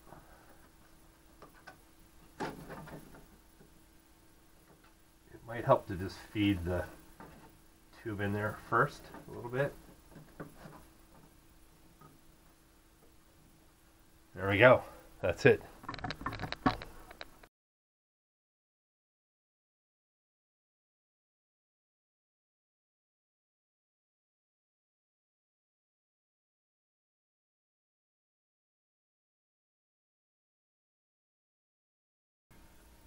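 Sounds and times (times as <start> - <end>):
scraping rustle: 5.7 - 11.4
handling clicks and taps: 15.8 - 17.5.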